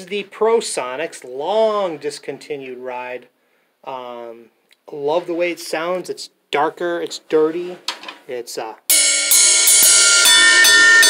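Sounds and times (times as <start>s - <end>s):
ride cymbal struck with drumstick: 8.9s - 11.0s.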